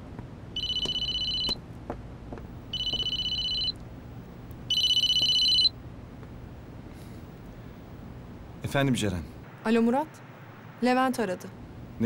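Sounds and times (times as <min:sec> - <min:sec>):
mobile phone ringing: 0:00.6 - 0:01.6, 0:02.7 - 0:03.8, 0:04.7 - 0:05.7.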